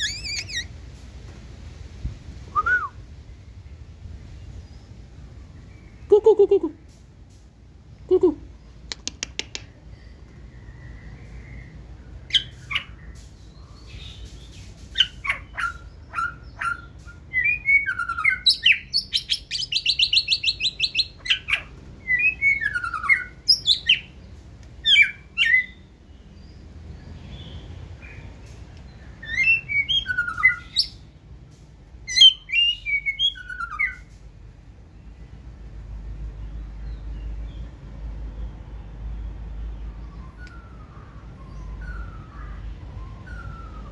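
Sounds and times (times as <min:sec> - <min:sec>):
bird singing whistled notes: 0:00.0 - 0:00.7, 0:02.5 - 0:03.0, 0:10.6 - 0:24.1, 0:24.8 - 0:26.6, 0:28.9 - 0:31.1, 0:32.1 - 0:34.1, 0:39.7 - 0:43.9.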